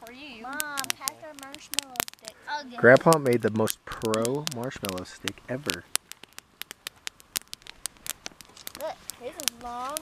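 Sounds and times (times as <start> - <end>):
campfire crackling and popping: 0.0 - 10.0.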